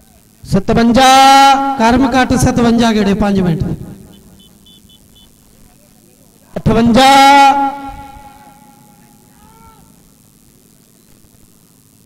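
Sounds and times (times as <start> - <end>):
man calling over loudspeaker: 0.0 - 4.4, 5.6 - 10.0.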